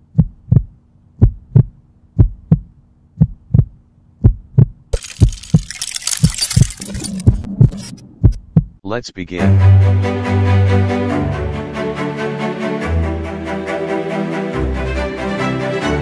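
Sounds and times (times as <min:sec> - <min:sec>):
heartbeat thumps: 0:00.0 - 0:04.9, 0:07.2 - 0:08.8.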